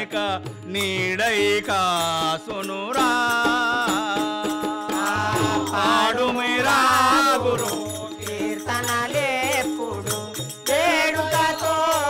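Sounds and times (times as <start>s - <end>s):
hand cymbals striking: 0.0s - 12.0s
men singing devotional song: 0.0s - 12.0s.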